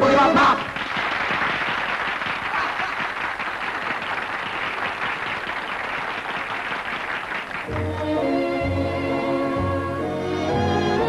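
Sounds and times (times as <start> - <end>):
crowd applauding: 0.0 - 8.3
soft orchestral music: 7.7 - 11.0.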